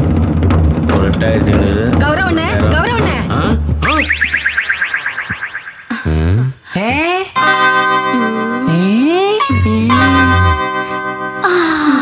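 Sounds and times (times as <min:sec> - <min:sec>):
quick rising swoops: 0:03.8 - 0:06.0
rapid electronic chirps: 0:03.8 - 0:06.4.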